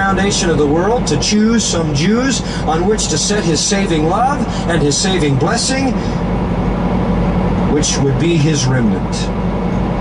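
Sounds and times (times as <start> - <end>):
man talking: 0.0 - 6.2, 7.7 - 9.4
low hum: 0.0 - 10.0
truck engine and road noise: 0.0 - 10.0.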